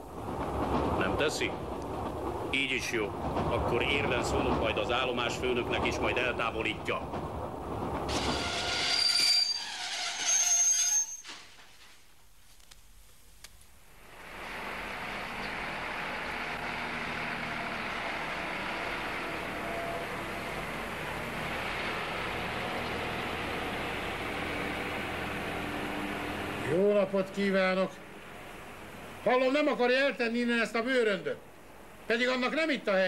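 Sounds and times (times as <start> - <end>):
steady background noise: 0.0 - 9.4, 11.2 - 33.0
train brakes squealing: 8.1 - 11.5.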